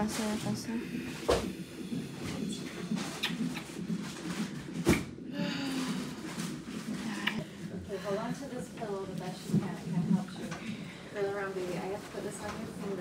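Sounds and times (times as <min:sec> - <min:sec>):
woman moaning and breathing: 0:05.3 - 0:06.2.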